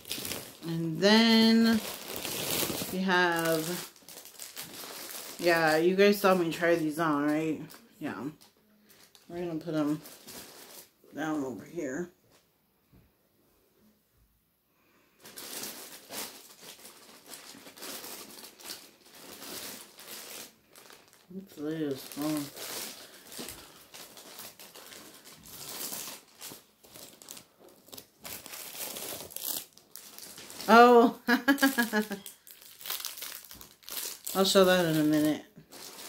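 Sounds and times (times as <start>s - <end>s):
packaging crinkling and rustling: 0.0s - 11.0s, 15.2s - 36.0s
person laughing: 31.0s - 32.3s.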